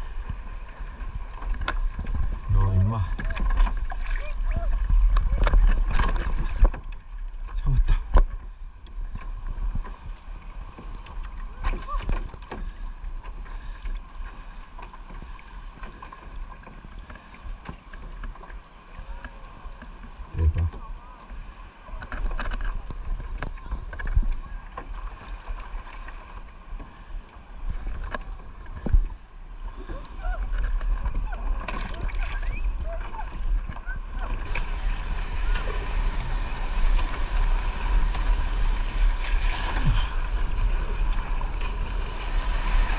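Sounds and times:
wind rumbling on microphone: 0:00.0 - 0:13.3, 0:19.0 - 0:42.9
waves lapping against kayak hull: 0:00.0 - 0:42.9.

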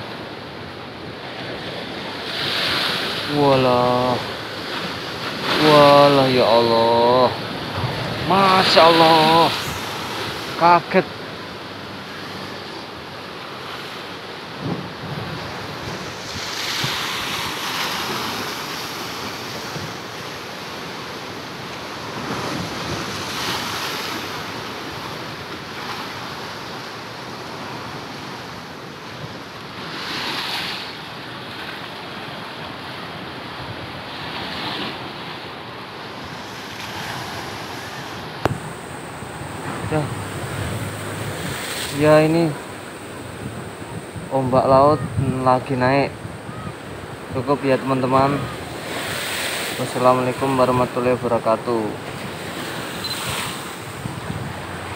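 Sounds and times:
surf crashing against seawall: 0:00.0 - 0:54.9
wind buffeting microphone: 0:38.3 - 0:41.9, 0:42.6 - 0:47.4, 0:52.0 - 0:54.9.

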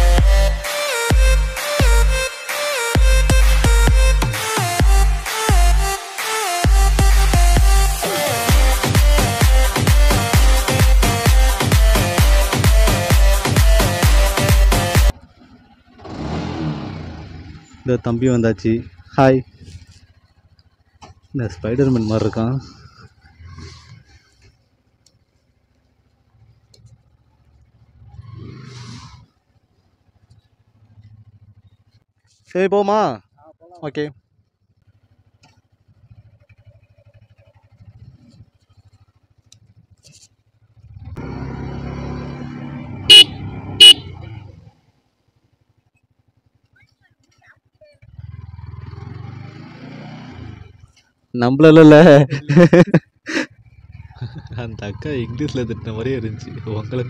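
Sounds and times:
motorcycle engine running: 0:06.6 - 0:32.5, 0:33.2 - 0:51.3, 0:52.2 - 0:57.0
motorcycle horn honks: 0:43.1 - 0:44.3.

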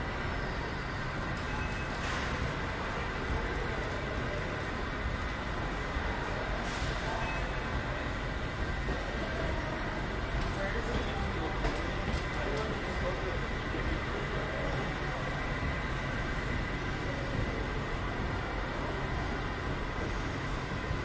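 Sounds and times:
indoor ambience rumble and hiss: 0:00.0 - 0:21.0.

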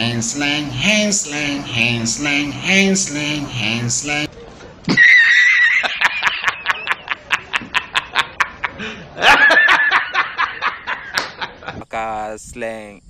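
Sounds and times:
man laughing hysterically: 0:04.9 - 0:11.9.

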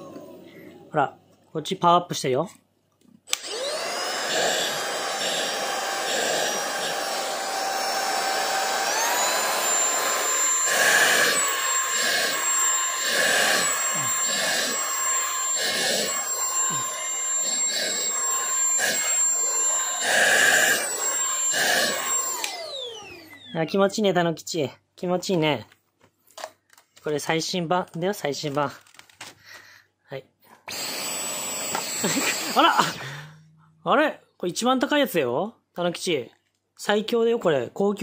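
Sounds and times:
stick vacuum cleaner motor whine: 0:03.3 - 0:23.6, 0:30.7 - 0:33.0
vacuum nozzle stroking cat fur: 0:03.4 - 0:23.2.

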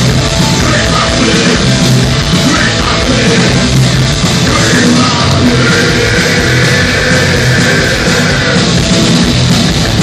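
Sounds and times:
loud live rock band: 0:00.0 - 0:10.0.

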